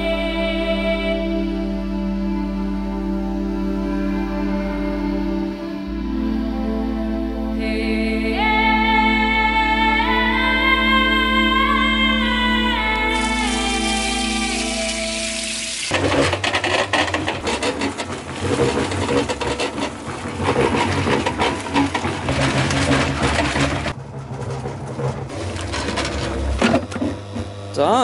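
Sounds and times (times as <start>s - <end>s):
background music: 0.0s - 15.9s
cement mixer churning: 13.1s - 27.7s.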